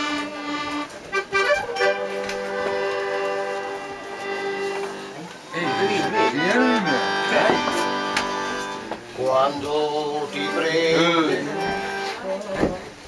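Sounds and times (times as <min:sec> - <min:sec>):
accordion chord: 0:00.0 - 0:12.4.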